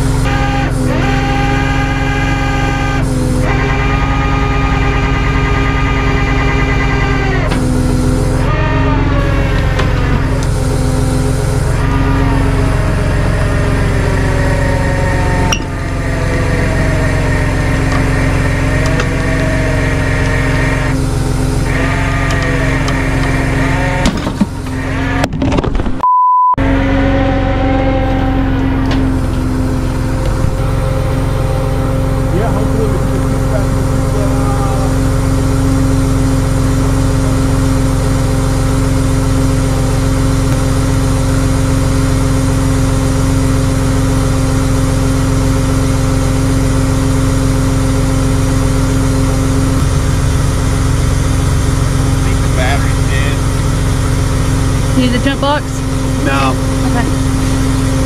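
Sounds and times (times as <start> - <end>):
indistinct voices: 0.0 - 25.3, 26.6 - 41.5, 49.2 - 58.0
truck engine humming: 0.0 - 25.5, 26.6 - 58.0
short electronic beep: 26.0 - 26.6.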